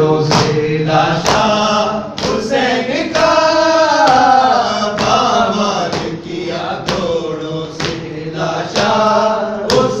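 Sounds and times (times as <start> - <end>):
men chanting in unison: 0.0 - 10.0
hands slapping chests: 1.2 - 3.4, 5.0 - 7.1.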